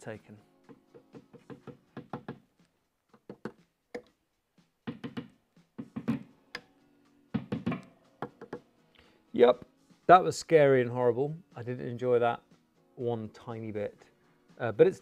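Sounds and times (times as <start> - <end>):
screwdriver tapping guitar pickups: 3.1 - 4.2.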